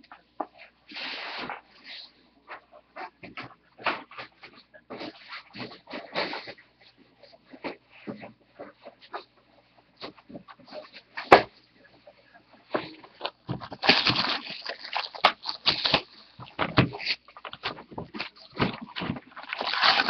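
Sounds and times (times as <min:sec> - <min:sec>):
foil wrappers crinkling: 0:12.8 - 0:20.0.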